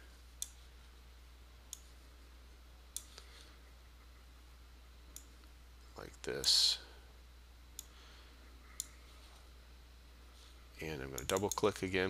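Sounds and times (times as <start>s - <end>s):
faint low hum: 0.0s - 12.0s
computer mouse clicks: 2.9s - 3.3s, 11.2s - 11.7s.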